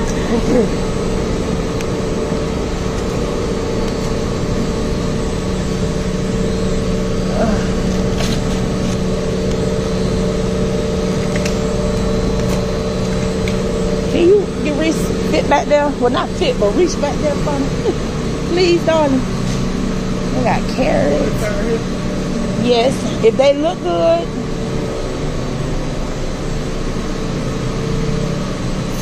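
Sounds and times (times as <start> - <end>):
fan air rush: 0.0 - 29.0
refrigeration hum: 0.0 - 29.0.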